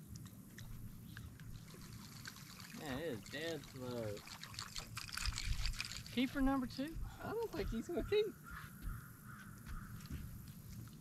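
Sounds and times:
water splashing and dripping: 0.1s - 6.7s.

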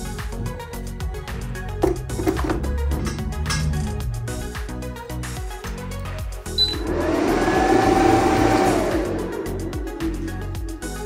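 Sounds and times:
short high beep: 6.6s - 6.8s
cooling fan spinning: 6.6s - 11.0s.

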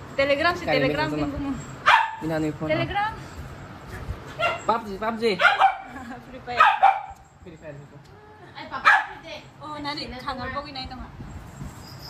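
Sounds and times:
puppy yipping: 1.9s - 2.2s, 4.3s - 4.7s, 5.4s - 6.0s, 6.6s - 7.2s.

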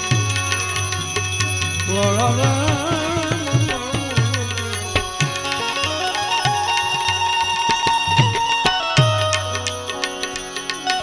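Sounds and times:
tabla playing: 0.0s - 11.0s.

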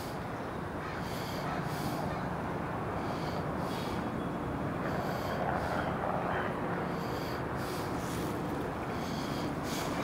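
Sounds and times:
faint vehicle noise: 0.0s - 10.0s.

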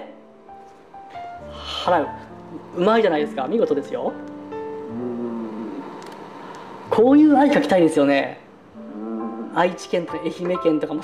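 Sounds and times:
low hiss: 0.0s - 11.0s
acoustic guitar music: 8.7s - 11.0s.

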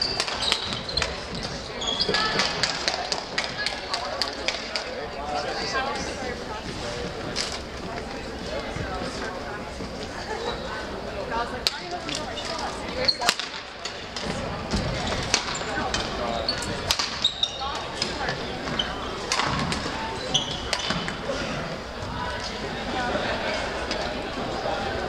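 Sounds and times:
shoes squeaking on wooden floor: 0.0s - 2.7s, 14.3s - 22.3s
murmur of voices echoing: 0.0s - 25.0s.

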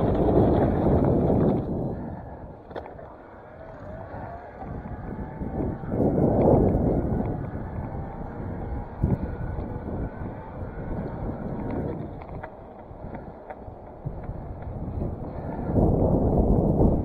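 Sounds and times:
bicycle tyres on paved road: 0.0s - 17.0s
wind rushing over microphone: 0.0s - 17.0s.

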